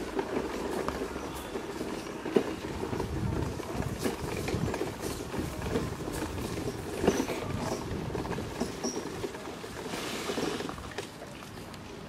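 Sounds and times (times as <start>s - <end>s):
wheels rattling over cobblestones: 0.0s - 12.0s.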